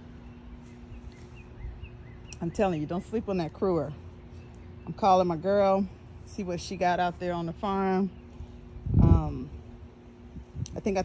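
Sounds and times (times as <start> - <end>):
bird chirps: 0.0 - 3.2.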